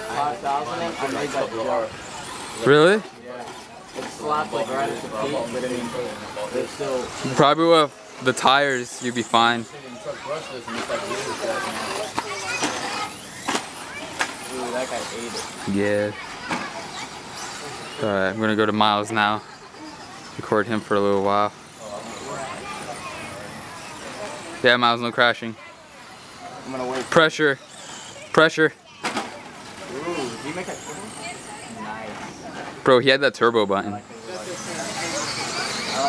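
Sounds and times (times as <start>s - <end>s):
electric rc trucks running on dirt: 0.0s - 36.0s
faint voices: 0.0s - 36.0s.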